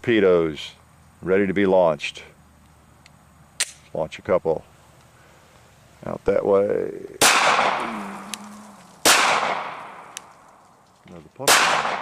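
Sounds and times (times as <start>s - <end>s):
pistol gunshot: 7.2s - 7.8s, 9.0s - 10.1s, 11.4s - 12.0s.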